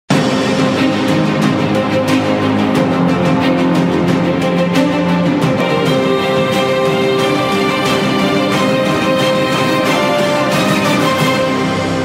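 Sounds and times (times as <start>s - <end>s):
theme music with sustained notes: 0.1s - 12.0s.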